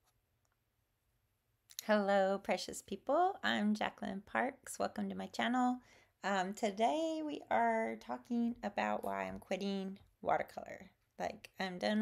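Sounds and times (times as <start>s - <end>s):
woman speaking: 1.7s - 12.0s.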